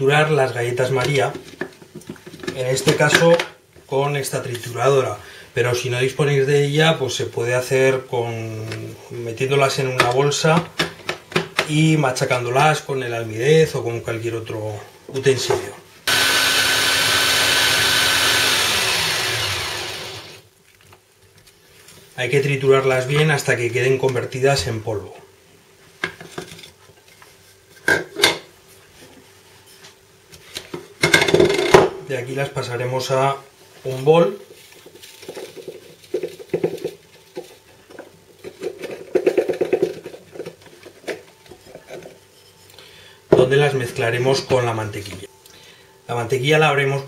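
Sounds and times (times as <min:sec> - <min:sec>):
blades grinding biscuits: 0:16.1 - 0:20.4
electric food chopper whining: 0:16.1 - 0:20.4.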